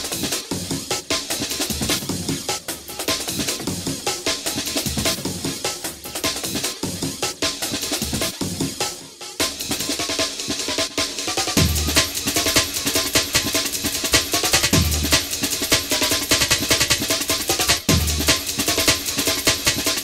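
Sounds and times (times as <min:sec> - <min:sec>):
drum-heavy electronic music: 0:00.0 - 0:20.0.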